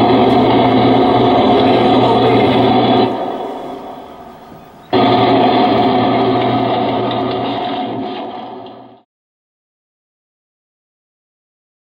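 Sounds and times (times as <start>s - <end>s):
buzzing sustained band chord: 0.0s - 6.8s.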